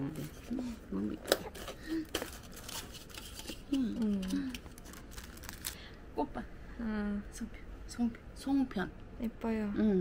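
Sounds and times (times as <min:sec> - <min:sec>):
plastic crackling: 0:01.2 - 0:05.8.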